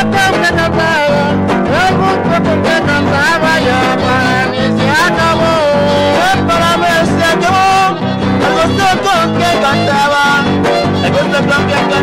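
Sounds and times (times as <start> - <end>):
strummed guitars: 0.0 - 12.0
violin melody: 2.8 - 12.0.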